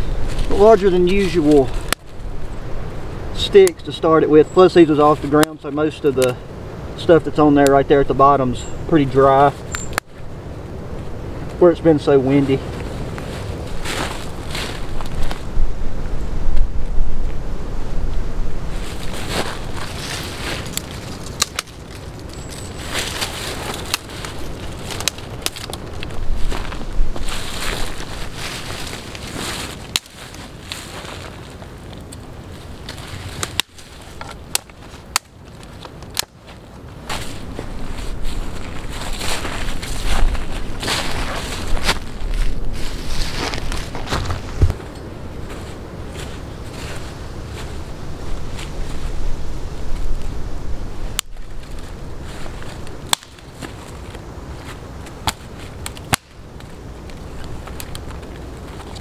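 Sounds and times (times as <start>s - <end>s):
wind rumbling on microphone: 0.0s - 59.0s
campfire crackling and popping: 18.1s - 44.8s, 50.9s - 59.0s.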